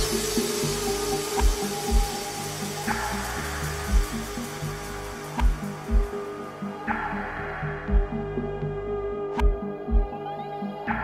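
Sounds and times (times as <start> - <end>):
deep kick drums: 0.0 - 0.3, 1.4 - 2.3, 3.9 - 4.5, 5.3 - 6.2, 7.8 - 8.8, 9.4 - 10.2
chilled electronic music: 0.0 - 11.0.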